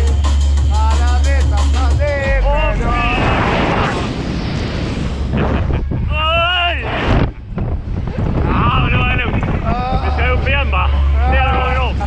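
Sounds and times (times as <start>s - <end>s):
wind rumbling on microphone: 2.0s - 12.0s
men yelling and laughing: 8.6s - 12.0s.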